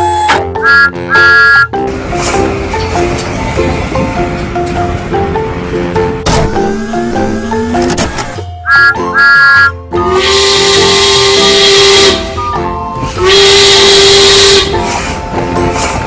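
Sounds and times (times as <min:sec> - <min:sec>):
hissing steam-whistle blasts: 0:00.0 - 0:01.7, 0:08.7 - 0:12.4, 0:13.0 - 0:15.0
short train whistle toots: 0:00.0 - 0:01.7, 0:08.7 - 0:12.3, 0:13.2 - 0:14.8
cheerful background music: 0:00.0 - 0:16.0.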